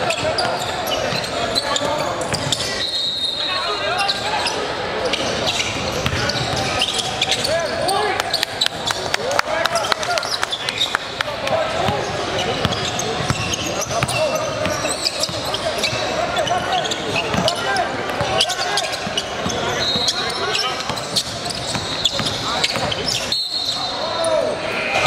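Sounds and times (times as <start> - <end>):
echoing voices in hall: 0.0 - 25.0.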